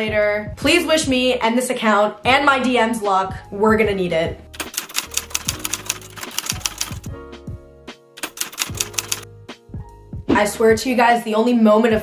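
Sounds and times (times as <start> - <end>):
beat with ticking percussion: 4.6 - 7.2, 8.2 - 9.2.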